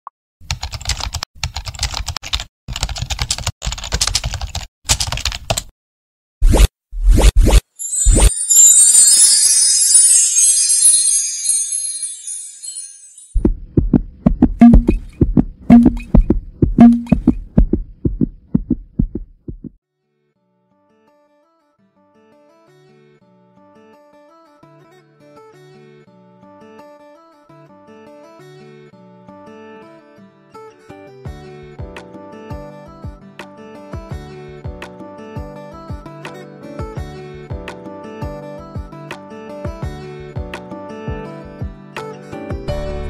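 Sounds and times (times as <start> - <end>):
rapid keyboard clicks: 0.4 - 5.7
deep percussive beat: 13.4 - 19.8.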